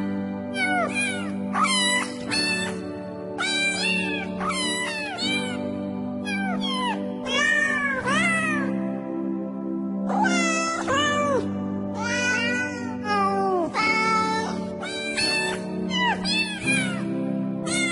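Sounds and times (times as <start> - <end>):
music with sustained chords: 0.0 - 17.9
cats meowing: 0.5 - 2.8, 3.4 - 5.6, 6.2 - 8.8, 10.1 - 17.9.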